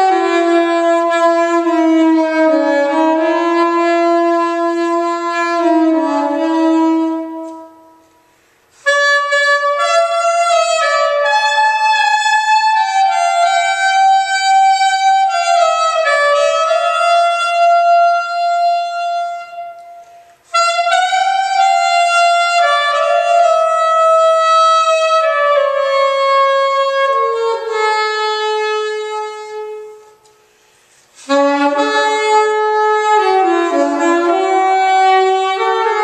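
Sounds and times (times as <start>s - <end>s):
soprano saxophone melody: 0.0s - 36.0s.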